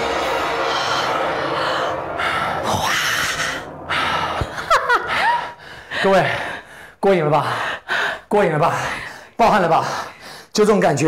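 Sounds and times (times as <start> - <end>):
person breathing hard: 0.5 - 10.6.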